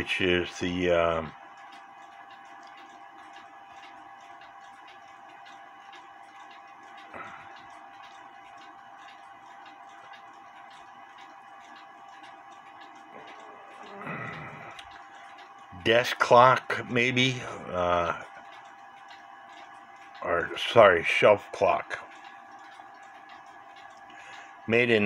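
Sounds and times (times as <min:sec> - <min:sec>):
clock ticking: 0:00.0 - 0:25.0.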